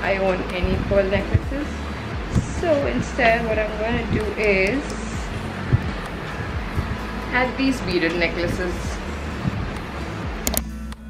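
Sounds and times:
background music with steady notes: 0.0s - 11.0s
necklace clasp clicks: 10.4s - 10.7s.

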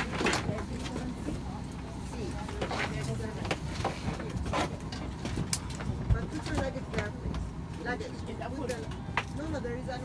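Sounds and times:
airliner cabin rumble: 0.0s - 10.0s
passengers' voices: 0.0s - 10.0s.

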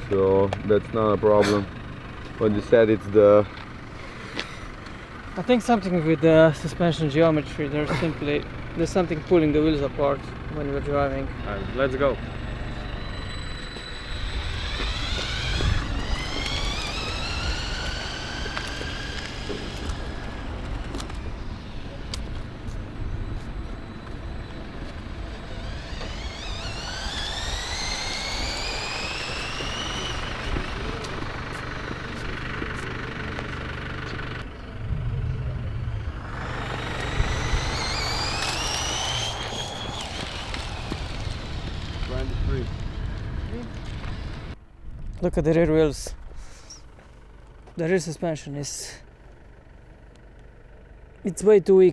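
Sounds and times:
toy car motors whining: 2.5s - 34.4s, 36.0s - 44.6s
low rumble: 8.4s - 47.6s.

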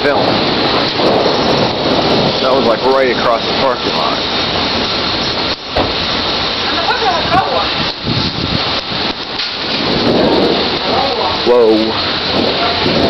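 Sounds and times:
strong wind: 0.0s - 13.0s
torrential rain: 0.0s - 13.0s.

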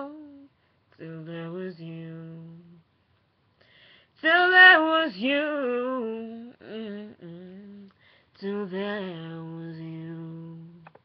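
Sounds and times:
breaths: 3.6s - 4.2s, 7.9s - 8.4s
person humming: 6.6s - 7.9s.

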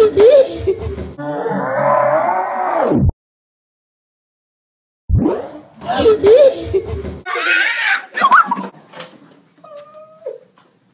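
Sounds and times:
person squealing: 7.3s - 8.7s.

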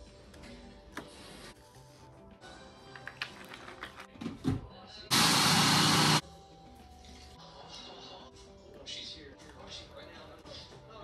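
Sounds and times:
blender motor running: 5.1s - 6.2s.

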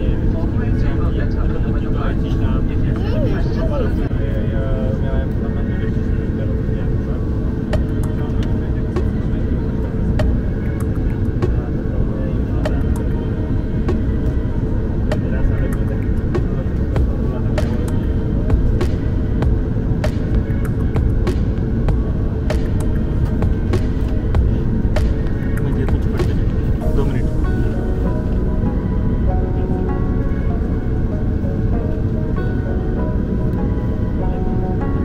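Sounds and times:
jet engines rumbling: 0.0s - 35.0s.

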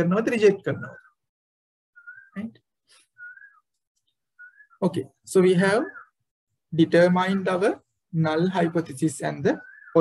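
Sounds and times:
soft whistled notes: 1.9s - 5.0s, 5.7s - 6.3s.

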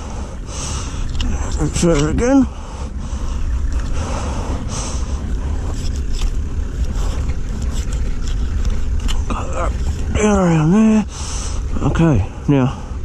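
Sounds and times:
low rumble: 0.0s - 13.0s.

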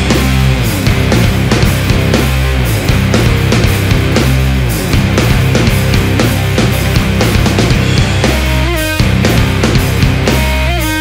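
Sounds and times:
driving drum beat: 0.0s - 11.0s
heavy rock band playing: 0.0s - 11.0s.

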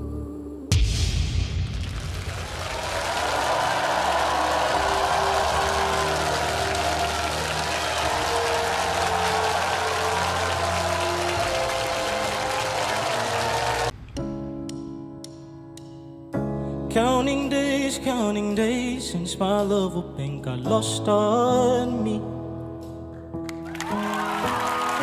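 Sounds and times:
audience cheering and applauding: 1.8s - 13.9s, 23.5s - 25.0s.

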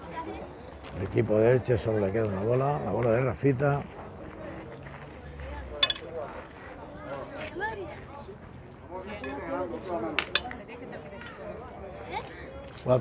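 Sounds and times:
faint voices: 0.0s - 13.0s
metal boules clinking: 5.8s - 6.1s, 10.2s - 10.5s.

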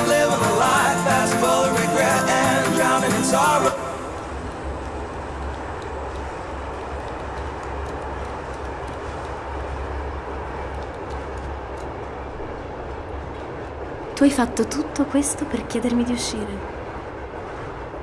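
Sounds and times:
train rumble and hiss: 0.0s - 18.0s.

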